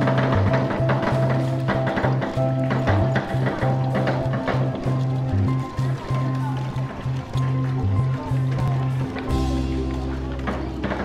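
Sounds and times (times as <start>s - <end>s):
bass line: 0.0s - 11.0s
drums: 0.0s - 11.0s.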